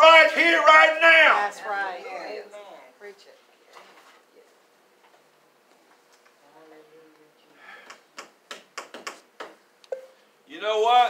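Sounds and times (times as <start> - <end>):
clicks and taps on acrylic: 7.8 - 10.1.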